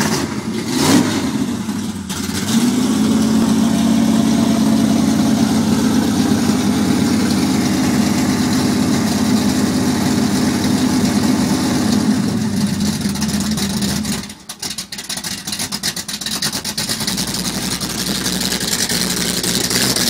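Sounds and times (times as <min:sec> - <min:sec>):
car engine revving and idling: 0:00.0 - 0:20.0.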